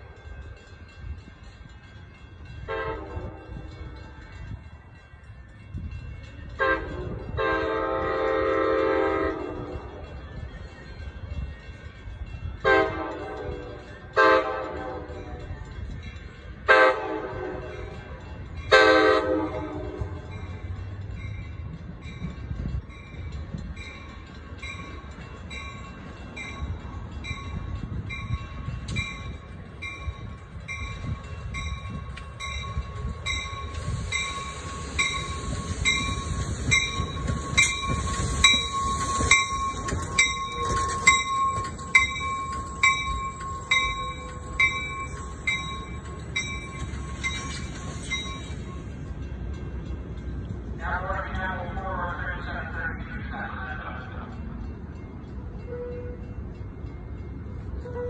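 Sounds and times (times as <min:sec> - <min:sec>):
passenger train passing: 0:00.0 - 0:58.0
train wheel clatter: 0:11.1 - 0:52.2
ringing bell beat: 0:20.2 - 0:50.4.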